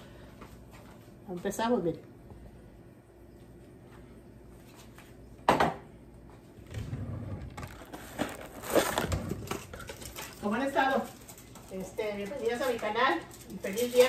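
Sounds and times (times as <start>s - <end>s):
crinkling and rustling: 6.6s - 14.0s.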